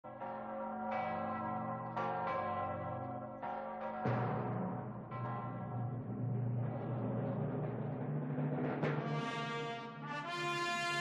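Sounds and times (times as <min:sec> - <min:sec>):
bells struck: 0:00.1 - 0:07.0.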